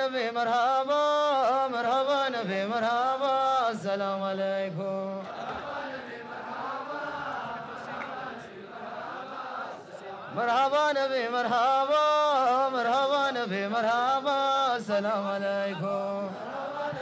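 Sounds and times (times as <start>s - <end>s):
amplified man singing: 0.0s - 6.1s, 10.2s - 17.0s
group of men chanting: 16.1s - 17.0s.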